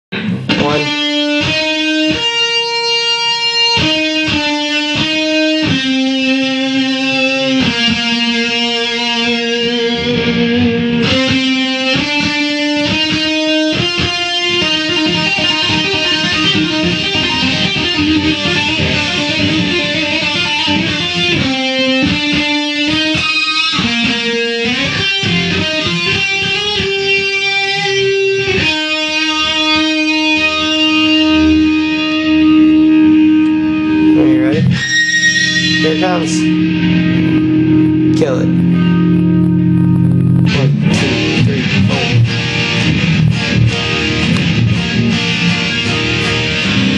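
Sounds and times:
electric guitar solo: 0.1s - 46.9s.

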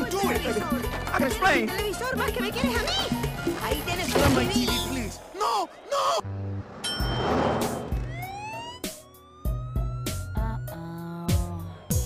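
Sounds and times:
police siren wailing: 7.9s - 11.2s.

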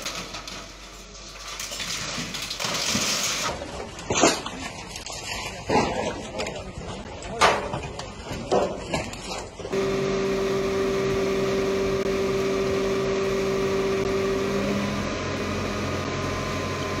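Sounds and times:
mechanical hum with whine: 9.6s - 17.0s.

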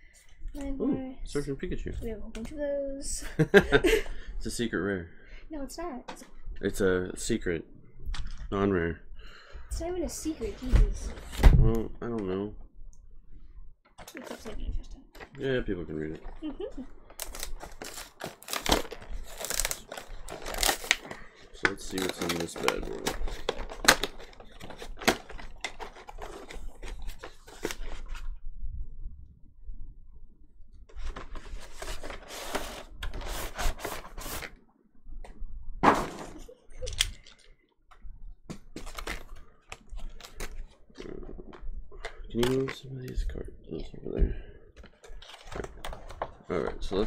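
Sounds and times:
packaging clicks and crinkles: 16.3s - 28.1s, 38.7s - 42.8s, 44.8s - 47.0s.

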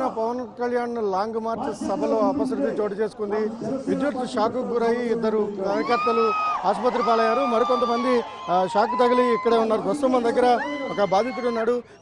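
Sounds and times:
man talking into a microphone: 0.0s - 12.0s.

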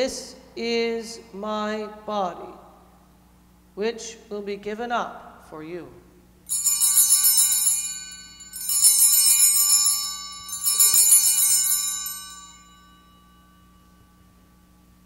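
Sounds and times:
altar bells jangling: 6.5s - 14.6s.

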